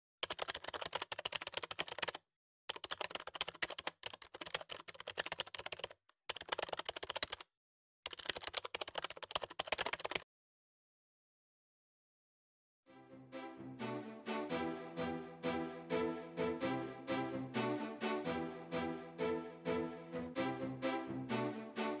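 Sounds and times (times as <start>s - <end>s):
keyboard typing: 0.2s - 7.5s, 8.1s - 10.2s.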